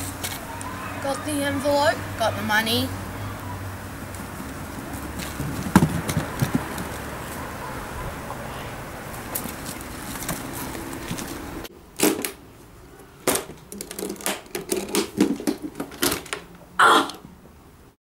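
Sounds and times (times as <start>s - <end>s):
outdoor background noise: 0.0s - 18.0s.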